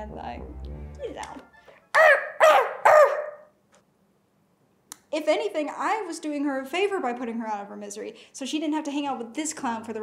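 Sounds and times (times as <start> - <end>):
dog yelp: 1.9 - 3.5.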